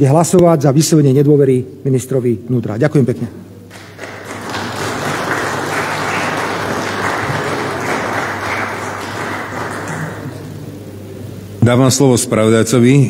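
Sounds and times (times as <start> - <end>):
applause: 3.7 - 10.6.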